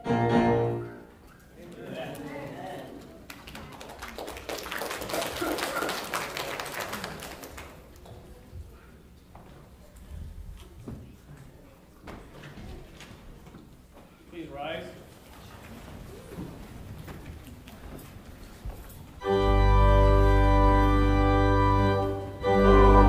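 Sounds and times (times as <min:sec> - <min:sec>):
murmur of voices: 0:00.0 - 0:04.0
shuffling and footsteps: 0:07.9 - 0:19.2.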